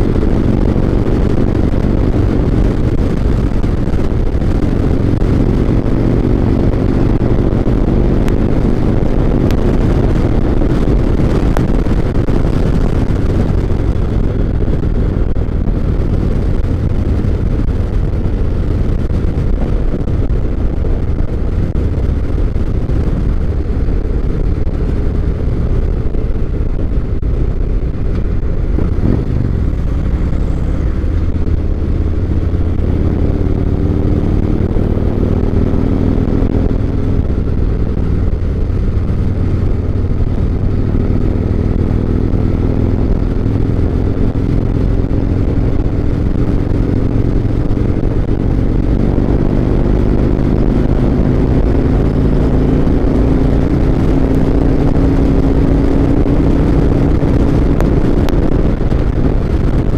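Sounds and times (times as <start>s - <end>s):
motorcycle engine cruising: 0.0s - 59.9s
wind and road noise: 0.0s - 59.9s.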